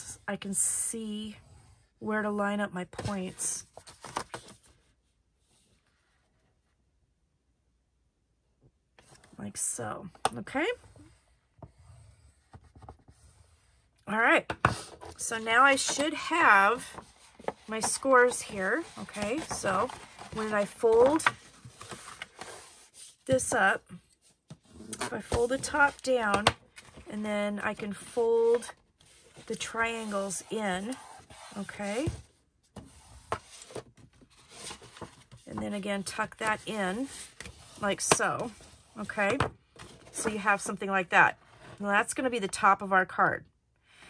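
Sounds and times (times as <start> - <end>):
paper rustling and crinkling: 15.8 - 23.0, 32.8 - 35.5.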